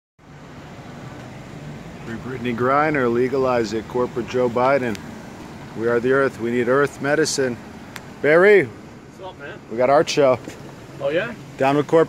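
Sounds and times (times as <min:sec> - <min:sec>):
street traffic hum: 0:00.2 - 0:12.0.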